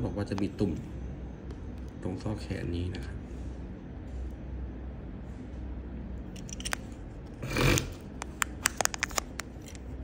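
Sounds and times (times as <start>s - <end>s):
hard pieces clicking together: 6.4s - 6.8s.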